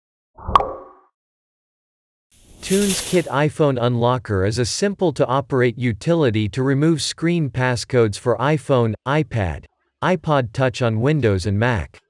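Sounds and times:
pop sound effect: 0:00.4 - 0:01.0.

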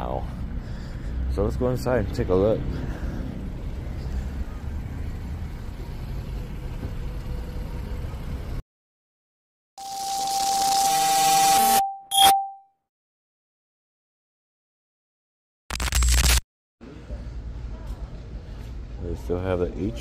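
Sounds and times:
low outdoor rumble: 0:00.1 - 0:08.6
glitchy intro sound effect: 0:09.8 - 0:11.8, 0:15.7 - 0:16.4
short ding: 0:11.6 - 0:12.6.

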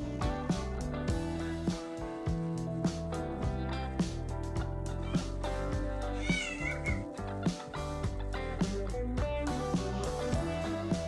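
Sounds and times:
guitar music with steady beat: 0:00.0 - 0:11.0.

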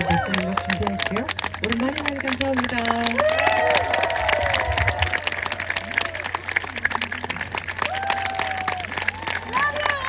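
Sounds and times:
voices calling out: 0:00.0 - 0:02.0
audience applauding: 0:00.0 - 0:10.0.

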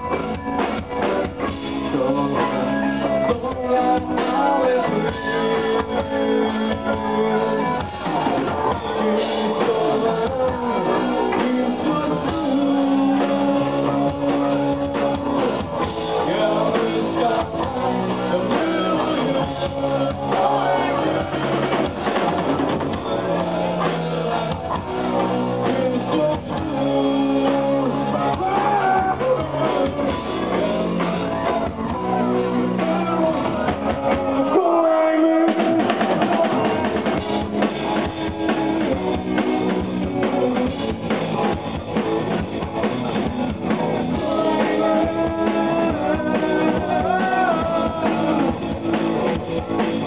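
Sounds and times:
drum kit: 0:00.0 - 0:50.0
electric guitars bending notes: 0:00.0 - 0:50.0.

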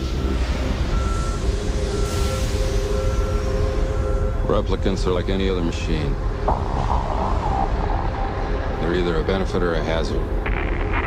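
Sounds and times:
electronic warning beeps: 0:00.0 - 0:05.2.

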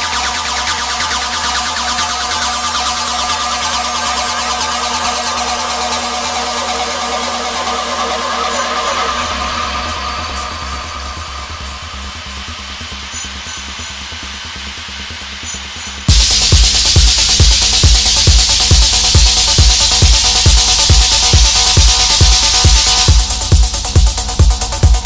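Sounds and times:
techno music with synth tones: 0:00.0 - 0:25.0.

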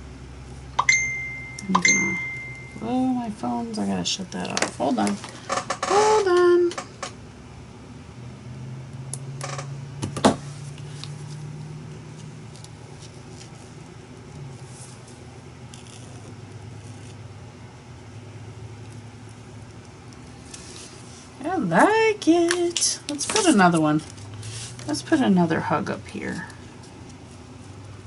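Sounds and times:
low steady rumble: 0:00.0 - 0:06.0, 0:06.6 - 0:28.0.

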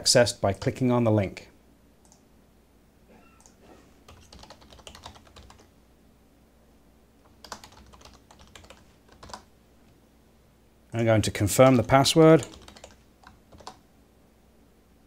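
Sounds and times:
computer keyboard typing: 0:03.4 - 0:05.7, 0:07.2 - 0:09.5, 0:11.8 - 0:13.8.

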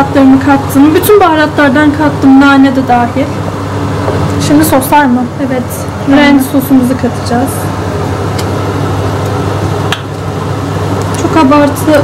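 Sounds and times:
kitchen background hum: 0:00.0 - 0:12.0.

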